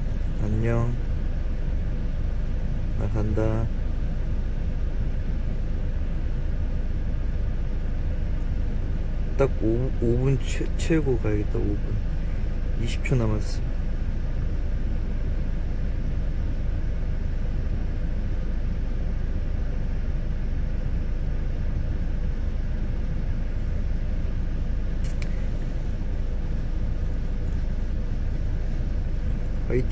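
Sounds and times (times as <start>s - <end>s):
car cabin low rumble: 0.0s - 29.9s
sharp clicks: 25.0s - 25.4s.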